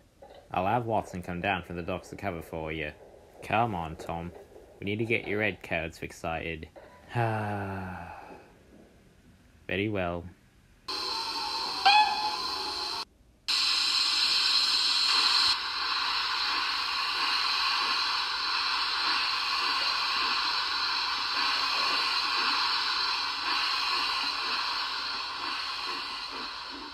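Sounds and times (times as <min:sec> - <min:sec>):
steady steam hiss: 0:00.0 - 0:06.5, 0:10.9 - 0:26.9
rising whistle-like tone: 0:10.9 - 0:15.8.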